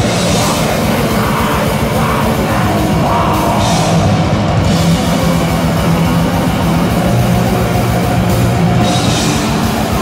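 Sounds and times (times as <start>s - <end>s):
distorted guitars and bass: 0.0s - 10.0s
very fast drumming: 0.0s - 10.0s.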